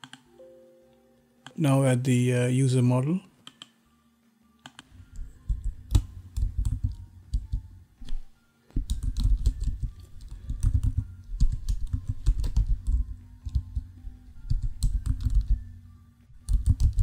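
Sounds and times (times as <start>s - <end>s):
typing on computer keyboard: 0.0s - 0.2s, 4.7s - 7.7s, 8.8s - 15.6s, 16.4s - 17.0s.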